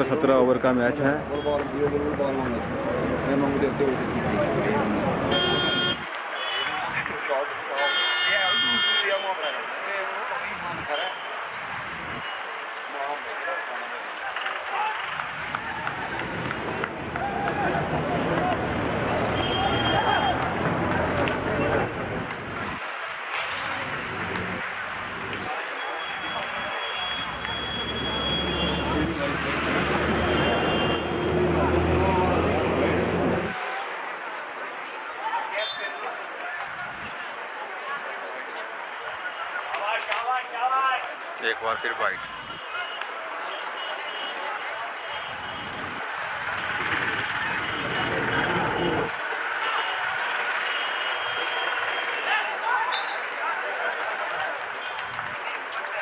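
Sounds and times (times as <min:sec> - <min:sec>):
vehicle horn toots: 0:05.3 - 0:06.8, 0:07.8 - 0:09.2, 0:30.2 - 0:31.2
engine rumble: 0:27.3 - 0:33.5.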